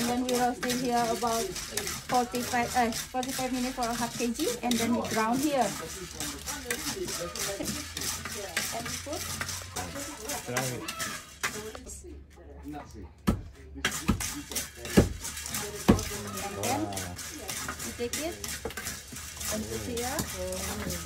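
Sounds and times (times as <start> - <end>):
pestle pounding in stone mortar: 0.0 - 11.8, 13.2 - 21.0
coffee beans rattling in a pan: 0.0 - 12.0, 13.9 - 21.0.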